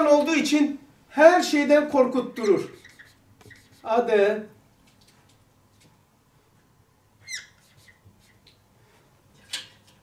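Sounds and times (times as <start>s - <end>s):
marker squeaking on whiteboard: 2.3s - 4.0s, 7.2s - 8.6s.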